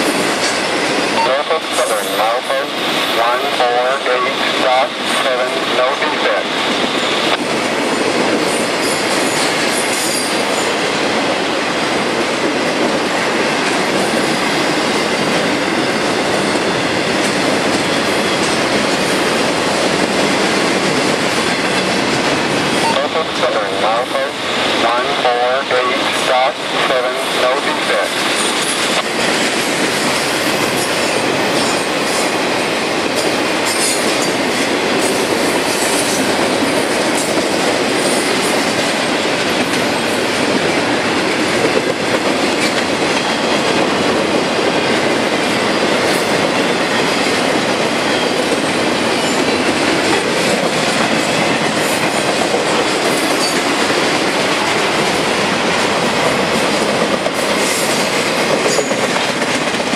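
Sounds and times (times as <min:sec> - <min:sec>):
freight train wheels on rails: 0:00.0 - 0:59.9.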